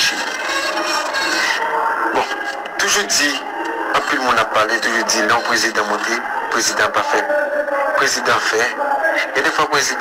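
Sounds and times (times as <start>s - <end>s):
scratchy rasping noise: 0.0s - 7.0s.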